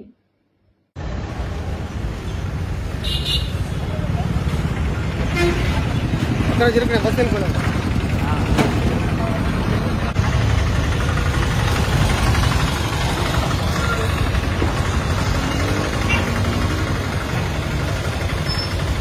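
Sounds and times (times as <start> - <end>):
auto-rickshaw engine rumbling: 1.0 - 19.0.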